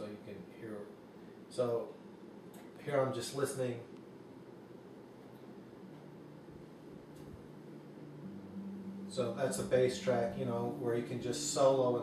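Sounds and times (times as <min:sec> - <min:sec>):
steady hiss: 0:00.0 - 0:12.0
low bass notes: 0:05.8 - 0:12.0.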